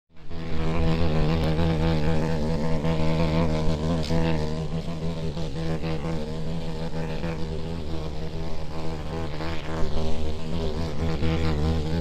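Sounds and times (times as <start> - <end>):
beetle buzzing in flight: 0.1 - 12.0.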